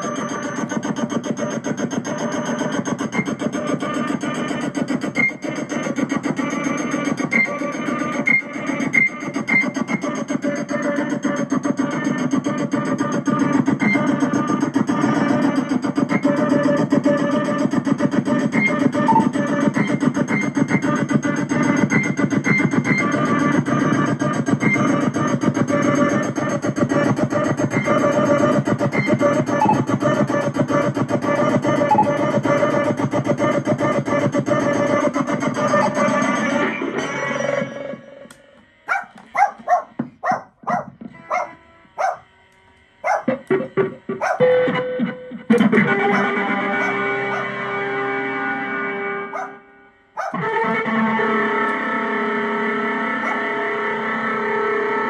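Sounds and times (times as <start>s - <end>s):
stuttering glitchy bursts: 0.0s - 37.2s, 43.0s - 49.5s
electronic noise texture: 0.0s - 42.2s, 42.9s - 55.0s
low drone: 43.0s - 55.0s.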